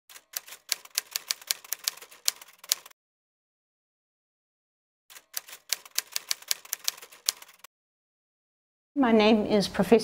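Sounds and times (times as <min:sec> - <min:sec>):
typewriter keys clacking: 0:00.1 - 0:02.9, 0:05.1 - 0:07.7.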